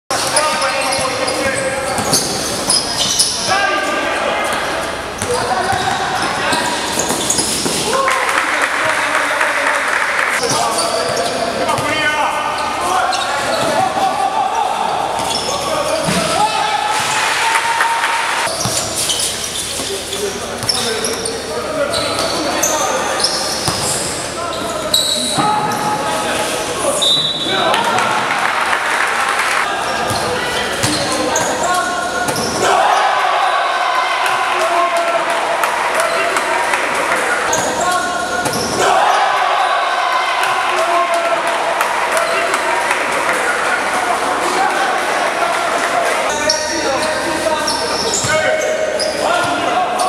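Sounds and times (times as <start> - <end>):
basketball bouncing on court: 23.6 - 24.0, 30.0 - 31.6
indistinct shouting voices: 26.9 - 50.0.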